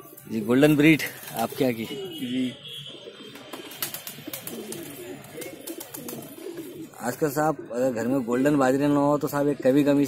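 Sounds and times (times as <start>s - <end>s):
pigeons cooing: 0.7s - 8.6s.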